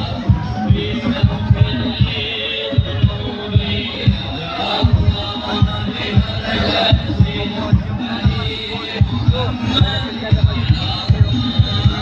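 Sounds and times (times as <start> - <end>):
low drum beats: 0.0 - 12.0
voices singing or chanting: 0.0 - 12.0.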